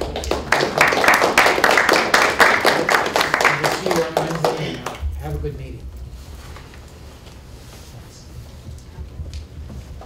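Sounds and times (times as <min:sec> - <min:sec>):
people applauding: 0:00.0 - 0:05.1.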